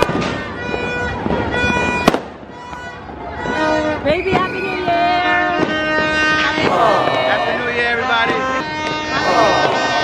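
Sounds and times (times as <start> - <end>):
firecracker bang: 0.0 - 4.6, 5.5 - 10.0.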